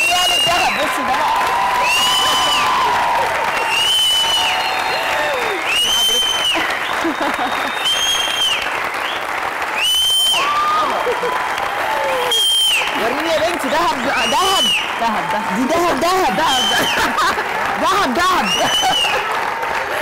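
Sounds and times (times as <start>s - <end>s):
audience clapping and cheering: 0.0s - 20.0s.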